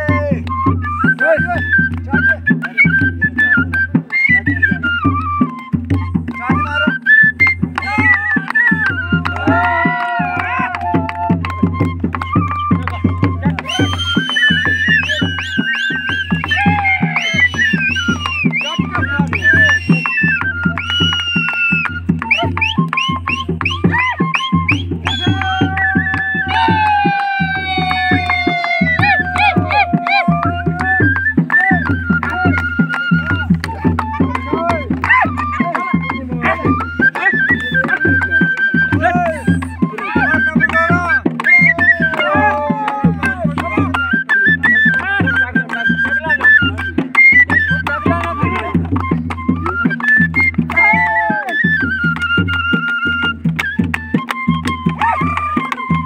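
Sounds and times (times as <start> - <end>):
barrel drum beat: 0.0 - 56.0
flute melody: 0.0 - 56.0.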